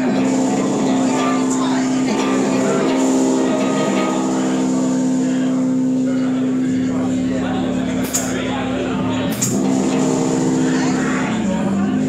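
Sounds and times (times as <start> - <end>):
deep low guitar note: 0.0 - 12.0
electric guitar held chord drone: 0.0 - 12.0.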